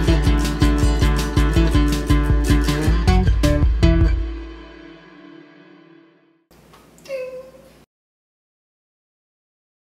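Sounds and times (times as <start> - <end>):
faint room hiss: 6.5 - 7.9
high-pitched vocal cry: 7.1 - 7.7.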